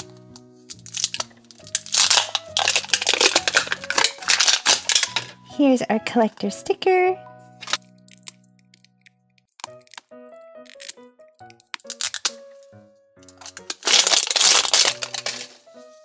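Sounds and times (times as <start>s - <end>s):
plastic wrapper crinkling and tearing: 0.0s - 5.4s, 7.6s - 12.6s, 13.2s - 15.8s
light background music: 0.0s - 16.0s.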